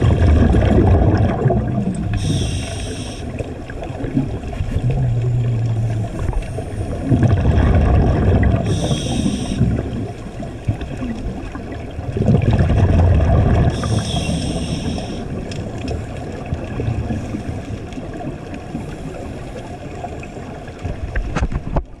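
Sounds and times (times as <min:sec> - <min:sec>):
bubbling regulator exhalation: 0:00.0 - 0:11.2, 0:12.1 - 0:15.5
hissing regulator inhalation: 0:02.1 - 0:03.3, 0:08.6 - 0:09.8, 0:13.7 - 0:15.3.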